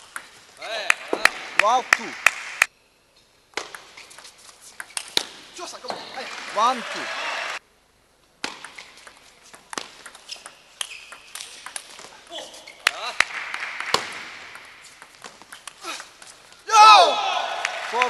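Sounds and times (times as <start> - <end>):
loud shout: 6.6 - 7.6, 16.7 - 18.0.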